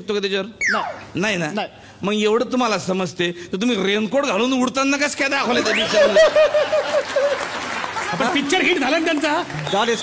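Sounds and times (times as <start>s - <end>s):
audience laughing and applauding: 5.6s - 10.0s
loud pulsing laugh: 5.8s - 7.4s.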